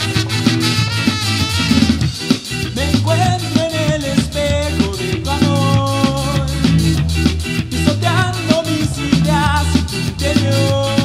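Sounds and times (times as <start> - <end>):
ska band playing: 0.0 - 11.0.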